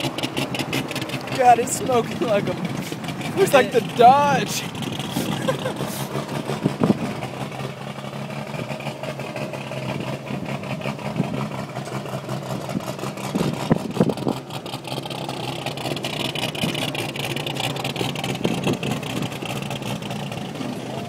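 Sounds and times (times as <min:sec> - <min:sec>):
truck engine idling: 0:00.0 - 0:21.0.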